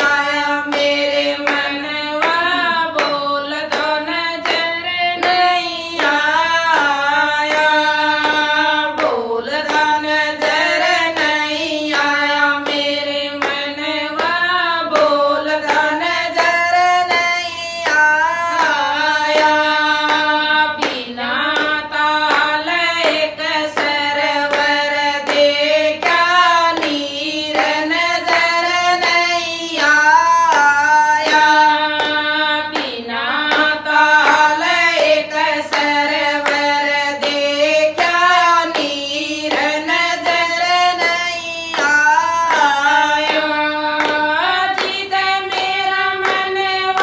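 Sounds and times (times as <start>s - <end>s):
hand claps: 0.0s - 47.0s
women singing devotional song: 0.0s - 47.0s.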